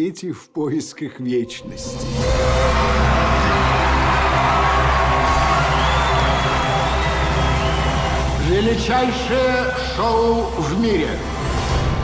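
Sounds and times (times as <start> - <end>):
trailer music: 1.3 - 12.0
crowd cheering: 2.2 - 9.8.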